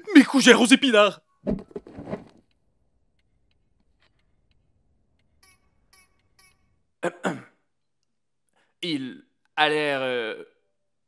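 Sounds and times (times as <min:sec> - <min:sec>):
person clearing throat: 0:07.0 - 0:07.6.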